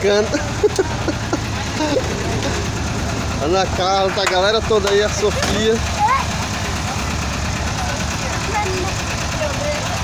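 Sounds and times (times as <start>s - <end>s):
chatter of voices: 0.0s - 10.0s
van engine idling: 0.0s - 10.0s.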